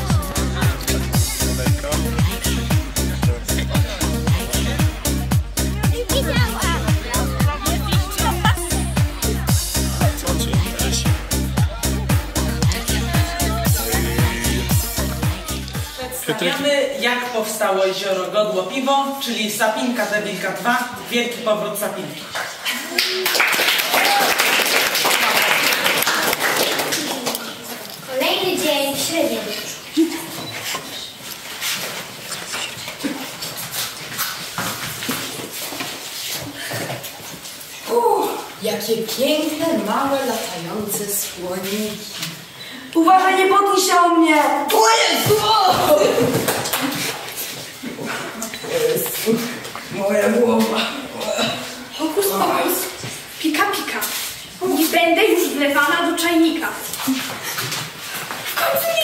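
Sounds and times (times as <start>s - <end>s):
children imitating animal sounds: 0.0s - 16.5s.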